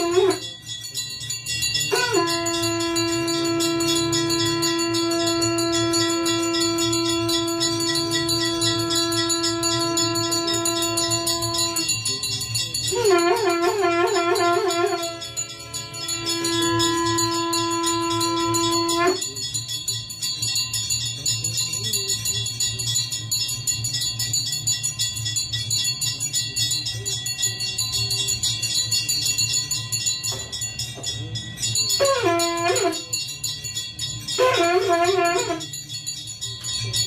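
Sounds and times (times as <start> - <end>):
conch shell blown: 0.0 - 19.9, 27.3 - 36.8
hand bell ringing rapidly: 0.0 - 37.0.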